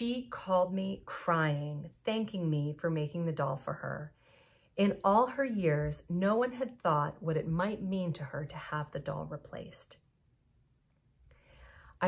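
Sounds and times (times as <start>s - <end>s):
faint breath drawn in: 4.2s - 4.8s, 11.2s - 12.0s.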